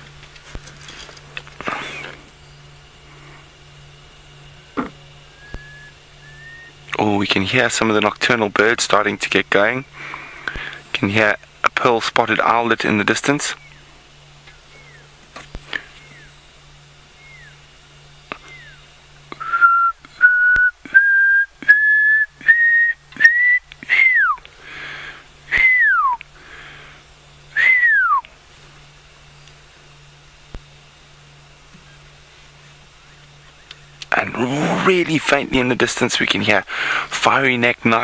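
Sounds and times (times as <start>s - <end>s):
owlet whistling call: 5.3s - 6.9s, 17.2s - 17.7s, 18.4s - 24.4s, 27.6s - 28.2s.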